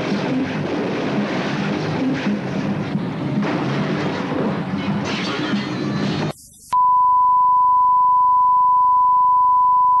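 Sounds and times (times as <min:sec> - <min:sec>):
steady sine tone: 0:06.7 - 0:10.0.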